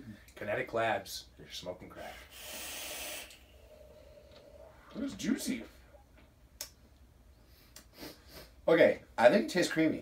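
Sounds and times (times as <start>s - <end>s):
airy hiss of vape draw: 2.1s - 3.9s.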